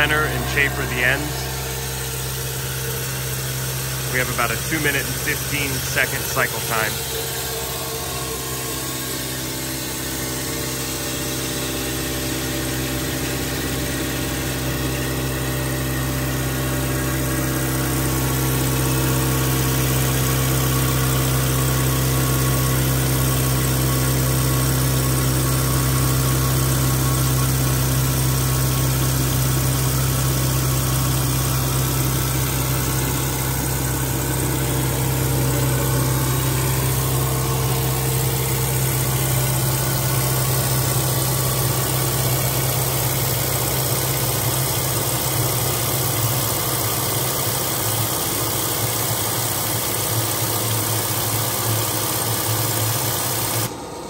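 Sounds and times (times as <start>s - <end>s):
machine hum with low drone: 0.0s - 54.0s.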